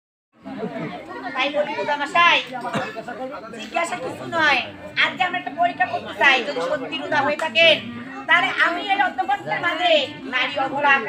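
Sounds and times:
people talking at once: 0.4 - 11.0.

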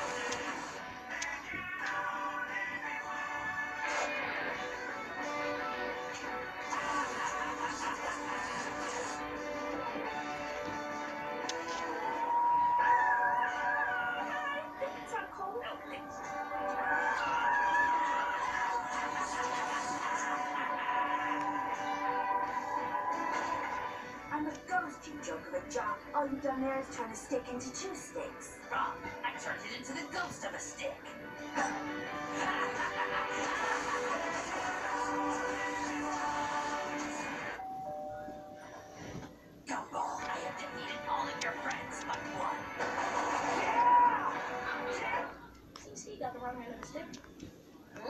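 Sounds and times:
cartoon music from television: 0.0 - 48.0
long held high tone: 37.6 - 39.1.

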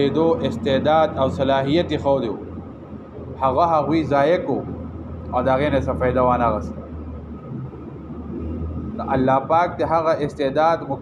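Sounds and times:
man talking: 0.0 - 2.4, 3.4 - 4.7, 5.4 - 6.7, 9.0 - 11.0
low background hum: 0.0 - 11.0.

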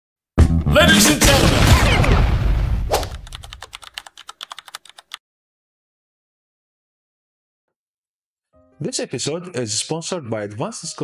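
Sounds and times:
fast run of clicks: 3.0 - 5.2.

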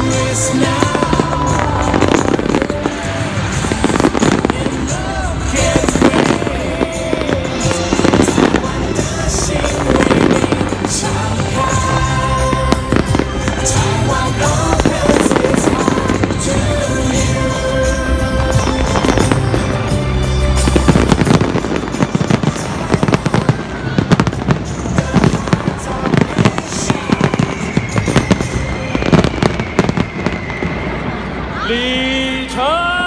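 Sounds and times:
fireworks bursting: 0.0 - 31.8
music playing: 0.0 - 33.0.

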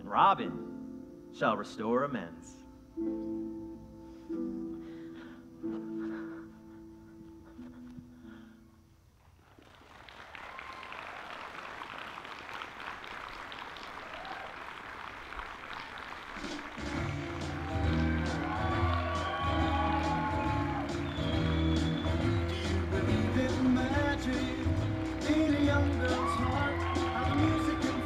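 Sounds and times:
audience applause: 9.5 - 28.0
music with strong bass: 16.8 - 28.0.

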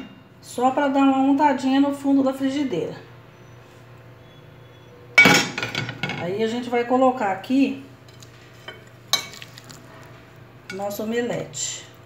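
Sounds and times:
kitchenware clink: 5.2 - 6.2, 8.1 - 9.8.

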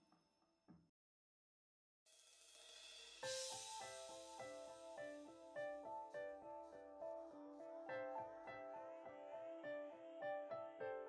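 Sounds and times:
rising cymbal swell: 2.1 - 5.5
background music: 3.2 - 11.0.

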